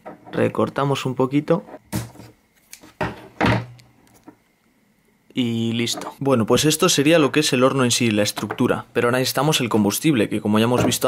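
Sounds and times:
thump on tin can: 1.9 - 2.3.

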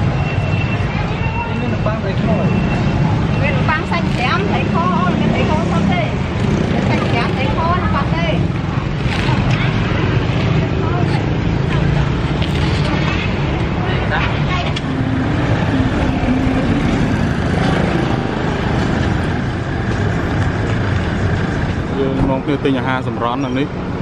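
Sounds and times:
passing motorbikes and cars: 0.0 - 24.0
people talking: 3.3 - 6.2, 6.8 - 8.5, 13.8 - 16.9.

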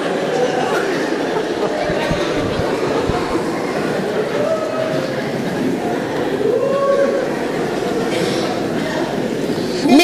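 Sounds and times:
many voices murmuring: 0.0 - 10.0.

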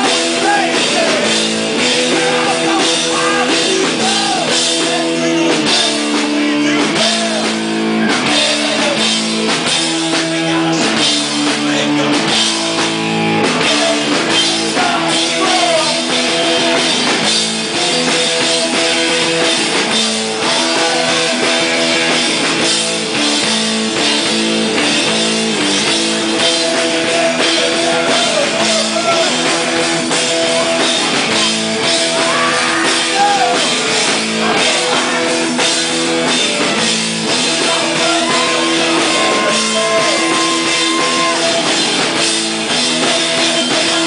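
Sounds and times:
drum kit: 0.0 - 44.0
electric guitar: 0.0 - 44.0.

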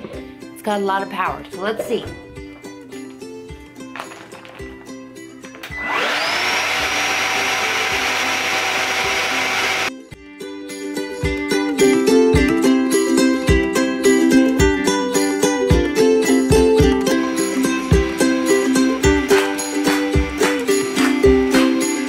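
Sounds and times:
background music with steady beat: 0.0 - 5.9, 7.8 - 22.0
wet dry vacuum motor whining: 5.6 - 9.9.

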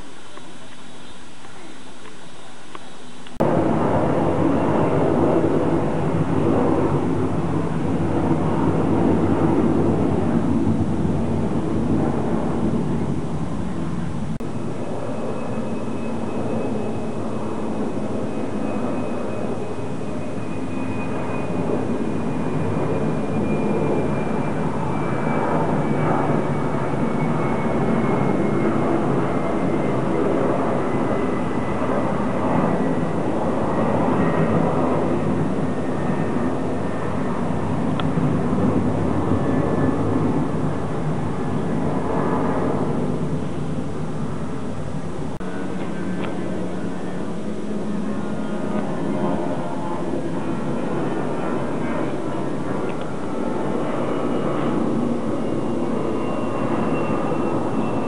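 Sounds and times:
high jet whine: 0.0 - 58.0
jet engine rumble: 0.0 - 58.0.

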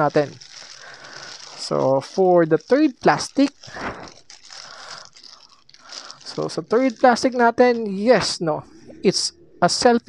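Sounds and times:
plastic packaging crinkling: 0.0 - 8.4.

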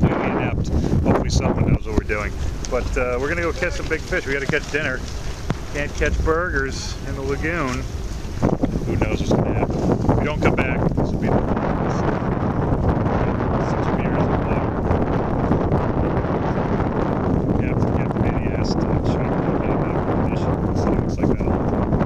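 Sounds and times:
boat motor droning: 0.0 - 22.0
hull rushing through water: 0.0 - 22.0
wind buffeting microphone: 0.0 - 22.0.

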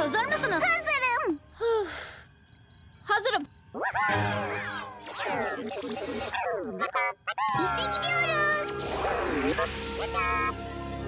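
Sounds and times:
warbling electronic chirps: 2.4 - 9.9.

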